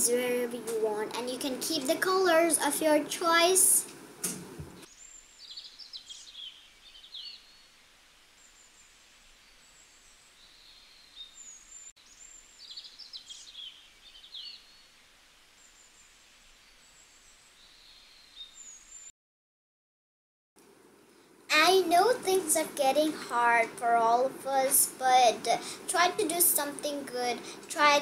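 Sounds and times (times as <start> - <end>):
low steady hiss: 0.0 - 19.1, 20.6 - 28.0
birds chirping and trilling: 4.7 - 7.7, 9.5 - 14.9.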